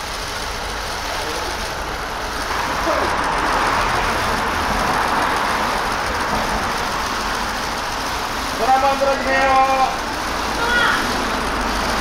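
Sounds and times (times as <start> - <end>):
road traffic: 0.0 - 12.0.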